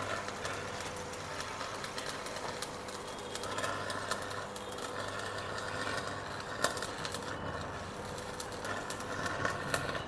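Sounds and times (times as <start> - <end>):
arc welding crackling hiss: 0.0 - 10.0.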